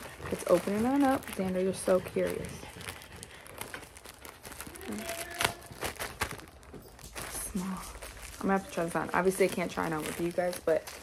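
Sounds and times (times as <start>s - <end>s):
plastic pouch crinkling: 0.0s - 11.0s.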